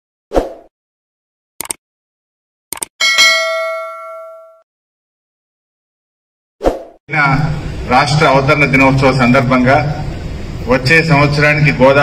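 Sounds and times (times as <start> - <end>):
quick double clicks: 1.6 - 1.8, 2.7 - 2.9
bell ding: 3.0 - 4.6.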